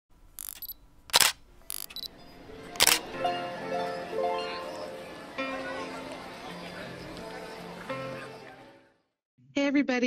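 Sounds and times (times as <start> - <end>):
camera shutter clicks: 0.4 - 2.1, 2.8 - 3.0
music with held notes: 2.1 - 9.1.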